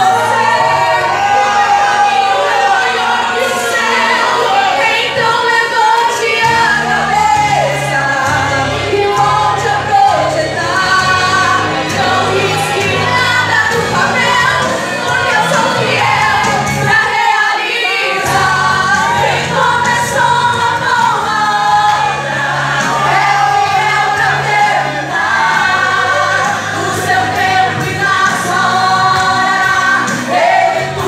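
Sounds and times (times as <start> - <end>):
two women singing a duet: 0.0 - 31.0.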